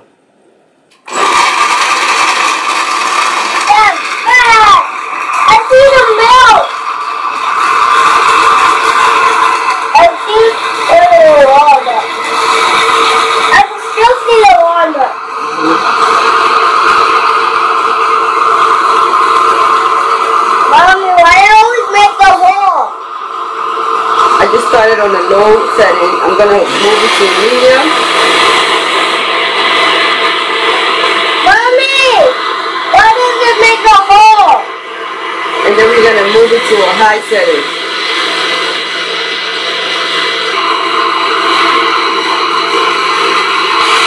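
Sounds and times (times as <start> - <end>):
blender grinding nuts: 1.0 - 44.0.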